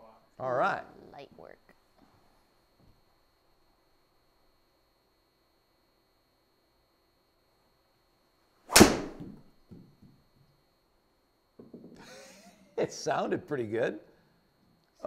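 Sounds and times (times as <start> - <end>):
golf club striking ball: 8.7 - 9.4.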